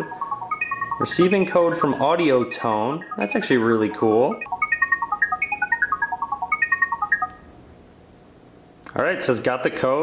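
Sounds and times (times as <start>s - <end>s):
fast short electronic beeps: 0.0s - 7.4s.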